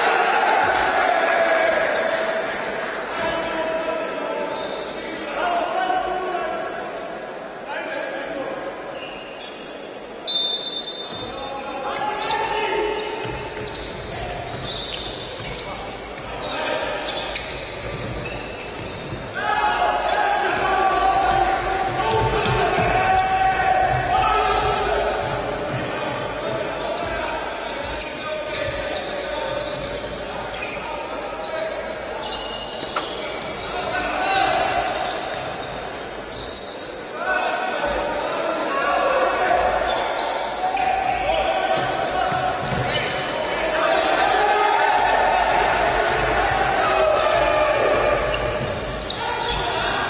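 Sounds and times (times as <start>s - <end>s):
voices calling and shouting: 10.2s - 50.0s.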